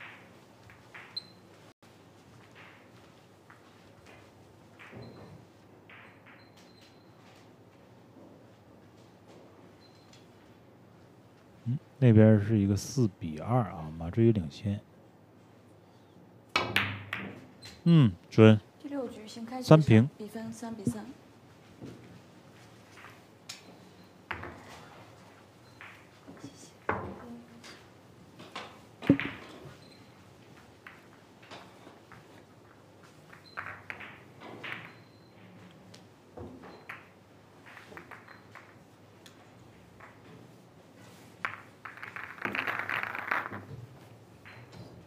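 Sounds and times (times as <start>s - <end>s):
billiard balls clicking: 0.0s - 1.6s, 22.6s - 45.0s
rattle of billiard balls: 0.0s - 11.2s, 16.5s - 17.8s, 21.6s - 45.0s.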